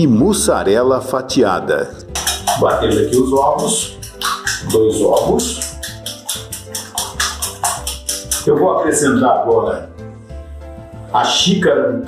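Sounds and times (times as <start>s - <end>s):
background music: 0.0s - 12.0s
whisk clicking in glass bowl: 2.1s - 8.6s.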